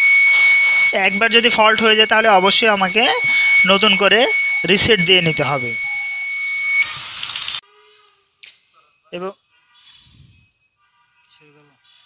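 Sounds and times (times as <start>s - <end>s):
high-pitched buzzer alarm: 0.0s - 7.0s
noisy crackle: 5.4s - 7.6s.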